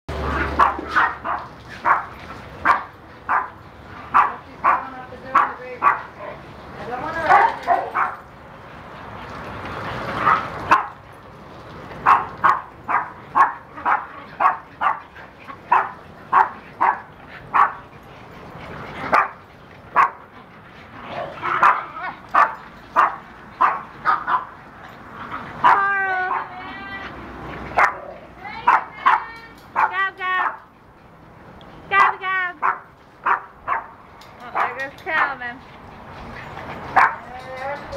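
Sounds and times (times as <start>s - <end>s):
dogs barking: 0.1s - 6.4s, 7.2s - 8.3s, 10.2s - 11.0s, 12.0s - 17.9s, 19.0s - 20.3s, 21.0s - 26.6s, 27.6s - 30.7s, 31.9s - 35.4s, 36.4s - 37.4s
dogs wavering calls: 12.0s - 31.2s, 35.9s - 37.9s.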